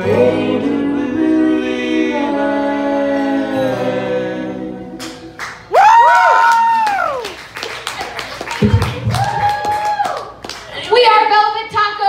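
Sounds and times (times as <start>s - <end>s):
audience clapping: 5.0s - 10.8s
high whoop: 5.7s - 7.4s, 8.6s - 10.4s
person cheering: 5.7s - 7.4s, 8.9s - 10.4s.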